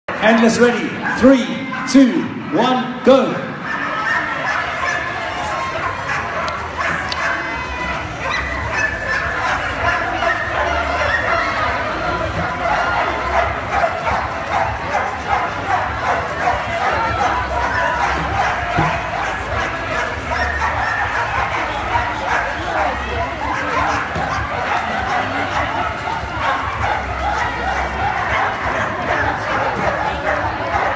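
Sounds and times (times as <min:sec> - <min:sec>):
crowd chatter and shouts: 0:00.0 - 0:30.9
dogs barking excitedly: 0:01.0 - 0:02.0, 0:03.6 - 0:30.9.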